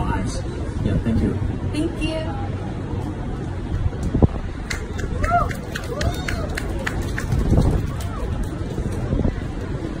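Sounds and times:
background chatter: 0.0s - 10.0s
low outdoor rumble: 0.0s - 10.0s.

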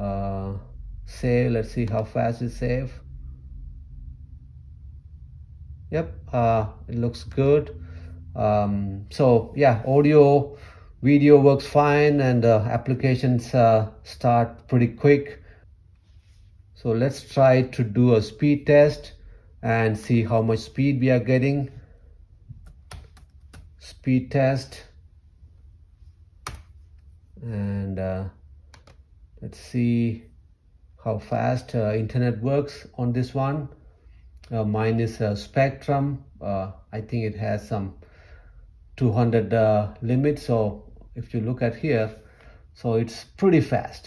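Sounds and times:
low steady hum: 0.0s - 44.0s
laptop click: 22.5s - 23.8s, 26.4s - 26.8s, 28.7s - 29.0s.

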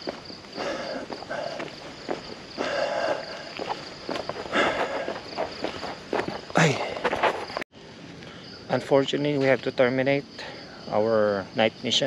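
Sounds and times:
footsteps crunching on road: 0.0s - 7.6s
crickets trilling: 0.0s - 12.0s.

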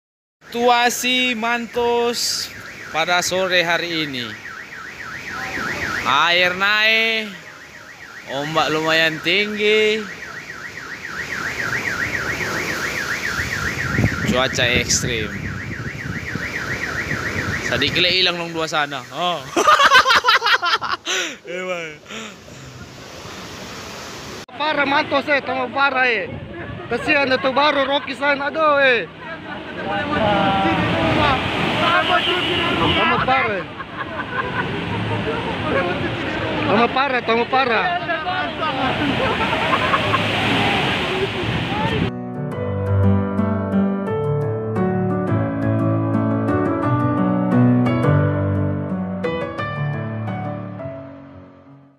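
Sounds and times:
car alarm wailing: 0.4s - 20.8s
wind: 0.4s - 51.7s
waves breaking: 0.7s - 15.5s, 16.3s - 42.1s
seawater rushing across road: 0.8s - 42.1s
people's voices: 21.1s - 23.2s, 24.5s - 42.1s.

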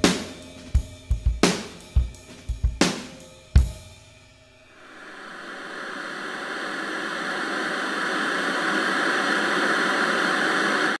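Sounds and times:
steady rushing noise: 4.7s - 11.0s.

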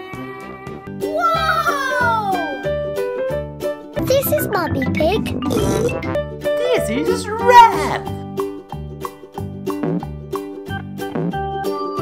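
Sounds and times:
upbeat children's music: 0.0s - 12.0s
cartoon pig oinking: 4.2s - 6.2s.

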